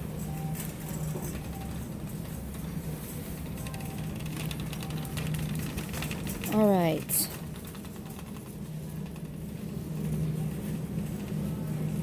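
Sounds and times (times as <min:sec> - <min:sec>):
steady low hum: 0:00.0 - 0:12.0
shopping cart rattling: 0:03.4 - 0:12.0.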